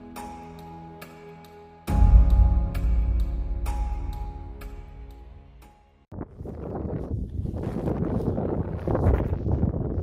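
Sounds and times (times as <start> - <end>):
wind buffeting microphone: 6.1 - 10.0.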